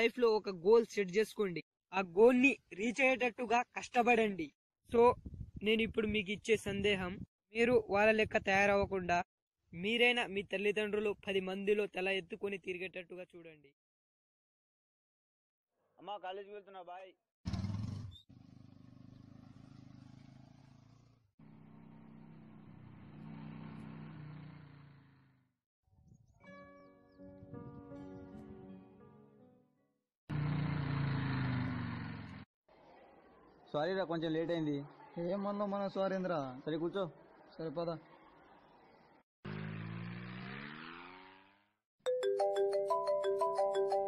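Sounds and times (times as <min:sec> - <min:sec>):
distant motorcycle engine running: 0:17.5 - 0:25.4, 0:30.3 - 0:32.4, 0:39.5 - 0:41.7
phone ringtone: 0:42.1 - 0:44.0.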